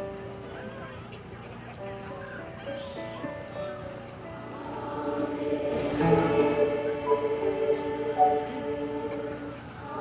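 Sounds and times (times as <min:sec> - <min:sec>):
children's choir singing: 0:04.5 - 0:10.0.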